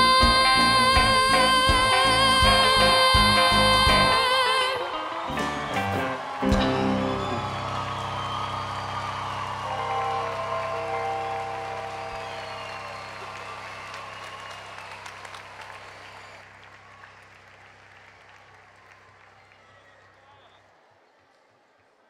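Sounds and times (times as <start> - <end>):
audience applause: 1.4 - 22.0
band chord ringing out: 9.6 - 13.8.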